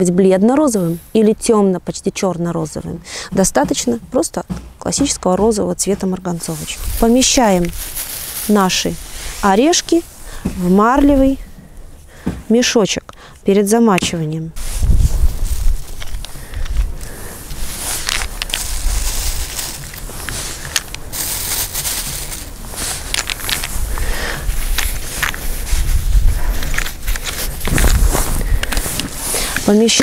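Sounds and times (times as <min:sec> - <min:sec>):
bag rustling and crackling: 0:06.2 - 0:11.5, 0:14.6 - 0:30.0
low rumble: 0:14.6 - 0:29.0.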